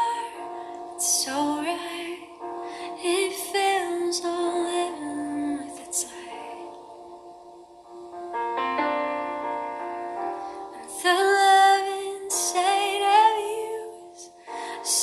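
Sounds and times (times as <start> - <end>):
woman singing with vibrato: 0.0 - 7.0, 10.8 - 15.0
held chords: 0.0 - 15.0.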